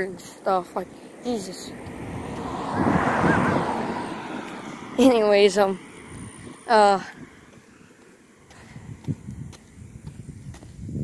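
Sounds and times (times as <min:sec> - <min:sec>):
vehicle passing by: 0:00.0 - 0:09.7.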